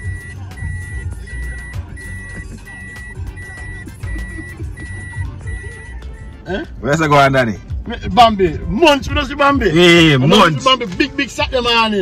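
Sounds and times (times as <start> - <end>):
car warning chime beeping: 0.0 - 6.4
music with deep bass beat: 0.0 - 12.0.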